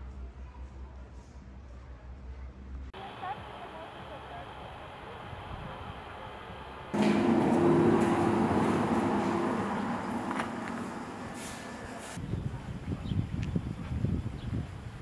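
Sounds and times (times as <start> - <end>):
faint outdoor ambience: 0.0 - 15.0.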